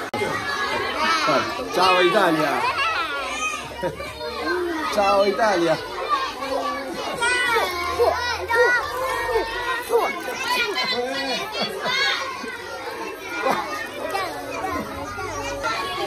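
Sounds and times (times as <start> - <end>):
schoolchildren talking and calling out: 0.0 - 16.0.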